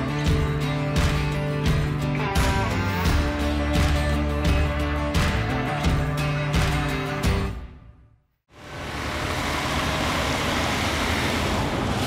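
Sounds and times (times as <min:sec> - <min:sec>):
truck traffic rushing: 0:08.5 - 0:12.0.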